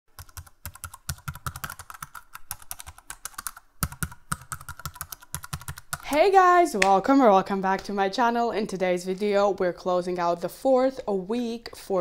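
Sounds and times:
fast typing on keys: 0.1s - 6.1s.

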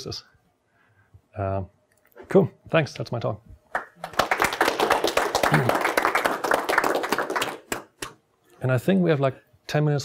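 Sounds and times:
audience applauding: 3.8s - 8.1s.

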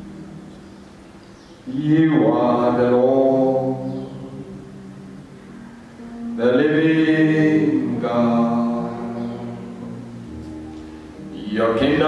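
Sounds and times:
soft musical drone: 0.0s - 12.0s
man singing a held note: 6.2s - 10.1s.

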